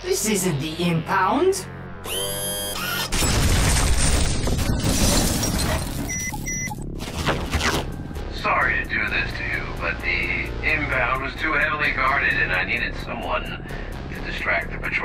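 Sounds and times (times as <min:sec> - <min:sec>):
short electronic beeps: 0:06.0 - 0:06.8.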